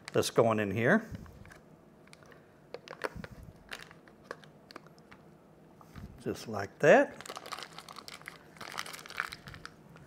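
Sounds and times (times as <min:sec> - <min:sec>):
foil wrapper crinkling: 0:02.1 - 0:04.9, 0:07.1 - 0:09.8.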